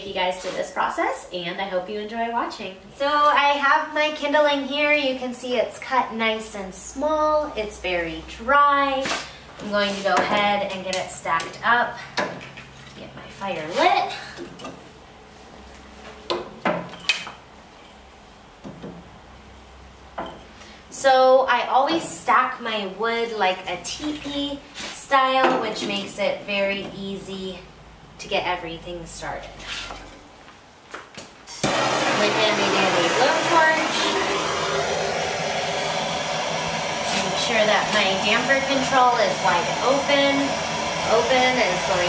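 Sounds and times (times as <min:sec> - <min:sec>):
gas blowtorch hissing: 0:31.6 - 0:42.0.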